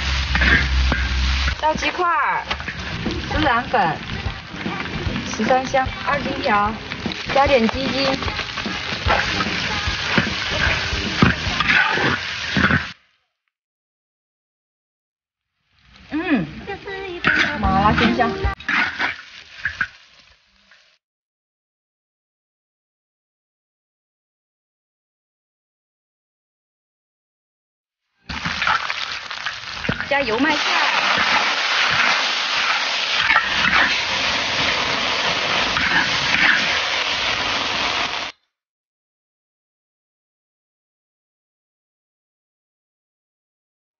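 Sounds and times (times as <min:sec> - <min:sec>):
metal spatula scraping a wok: 0:00.0 - 0:03.5, 0:08.0 - 0:12.9, 0:17.2 - 0:19.8, 0:31.0 - 0:38.3
light sizzle: 0:00.0 - 0:13.2, 0:15.5 - 0:21.0, 0:28.2 - 0:38.3.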